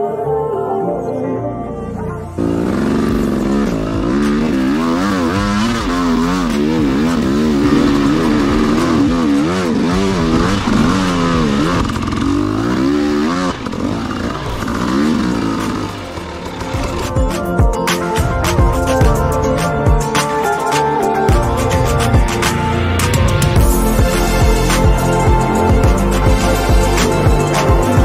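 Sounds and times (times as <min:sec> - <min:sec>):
dirt bike engine revving: 0:02.3 - 0:28.0.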